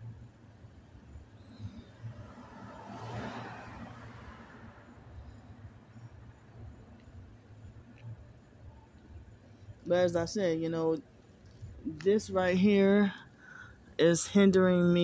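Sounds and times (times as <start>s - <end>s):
passing vehicle rush: 1.6s - 7.3s.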